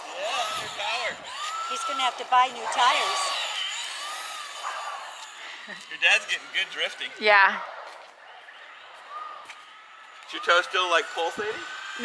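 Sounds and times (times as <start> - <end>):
electric motor whining: 0.0 - 7.4, 8.5 - 12.0.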